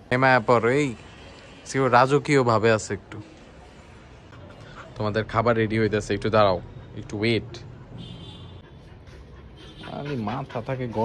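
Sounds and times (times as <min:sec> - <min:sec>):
dog panting: 0:08.6 - 0:11.0.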